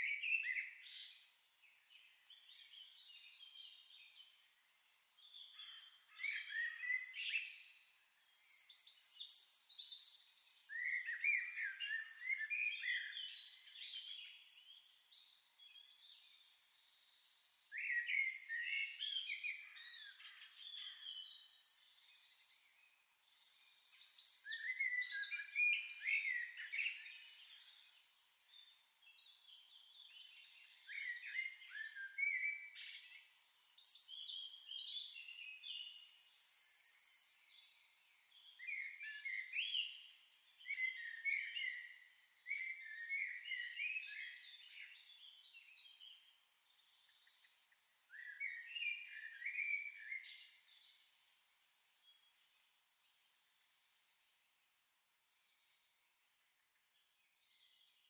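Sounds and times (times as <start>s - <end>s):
birds chirping and trilling: 0.0s - 58.0s.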